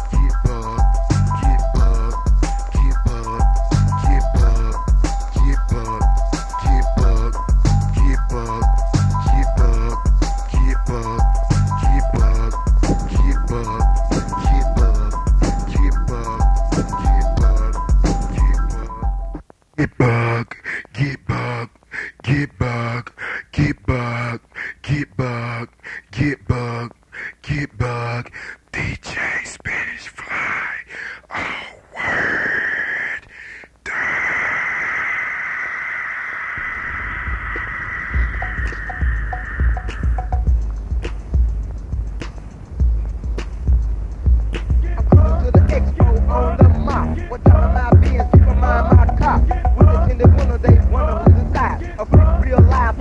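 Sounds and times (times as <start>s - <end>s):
fast hi-hat ticks: 0.0s - 18.8s, 38.2s - 53.0s
deep bass kicks: 0.2s - 5.9s, 6.8s - 8.4s, 9.0s - 18.7s, 39.7s - 42.2s, 42.8s - 53.0s
bell-like synth melody: 16.4s - 19.4s, 38.9s - 40.5s
steady hissing tone: 28.4s - 49.8s.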